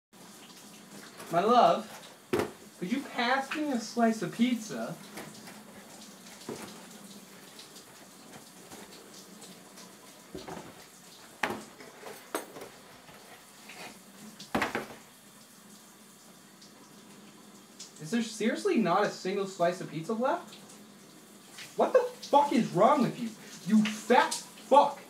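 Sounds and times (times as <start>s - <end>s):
faint steady hiss: 0.2s - 25.0s
cardboard box knocks and rustles: 2.3s - 2.6s, 14.5s - 15.0s.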